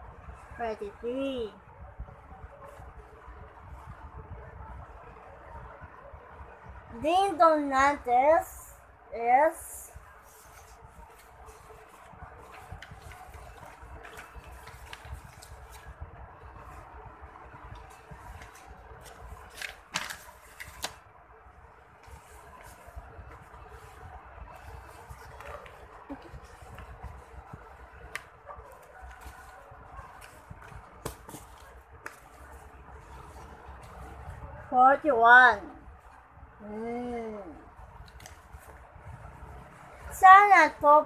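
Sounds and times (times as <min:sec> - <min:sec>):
paper rustling: 0:10.2 - 0:16.8, 0:17.7 - 0:21.0, 0:22.0 - 0:34.2
paper snapping: 0:19.5 - 0:21.0, 0:31.0 - 0:32.2.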